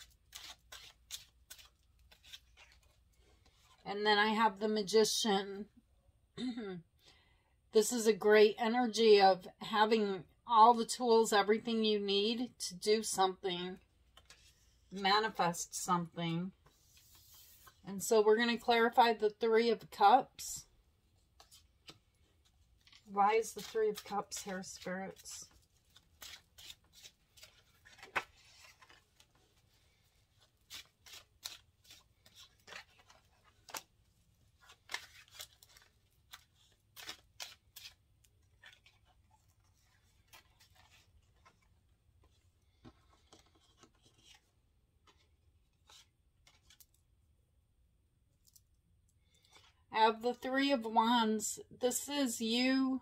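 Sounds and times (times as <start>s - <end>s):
cards being shuffled: 0.0s - 3.8s, 14.1s - 14.7s, 21.2s - 47.0s.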